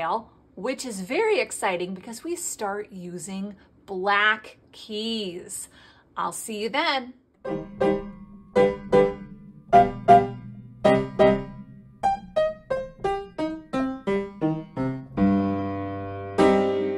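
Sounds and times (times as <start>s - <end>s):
piano melody: 7.4s - 16.9s.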